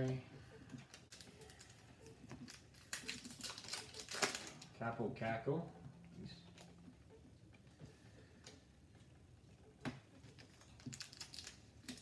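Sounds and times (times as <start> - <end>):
trading cards clicking and rustling: 0.0 - 4.8, 9.8 - 12.0.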